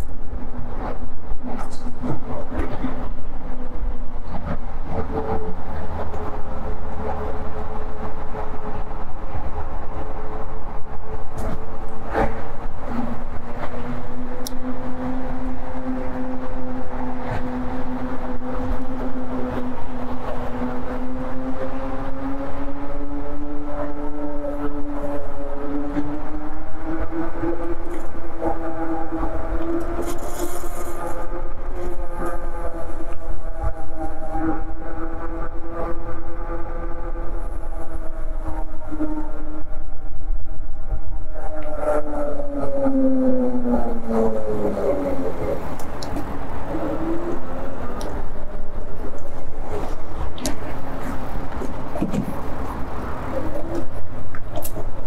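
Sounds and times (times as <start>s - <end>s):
rumble of wind and tyres: 0.0s - 55.0s.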